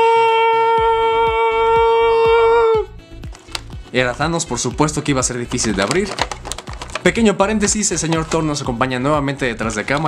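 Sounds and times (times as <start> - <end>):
plastic packaging clicks: 3.3 - 3.8, 5.5 - 8.6, 9.6 - 10.0.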